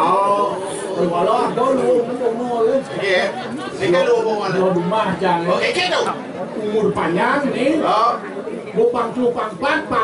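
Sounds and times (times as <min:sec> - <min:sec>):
men speaking stage dialogue: 0:00.0 - 0:10.0.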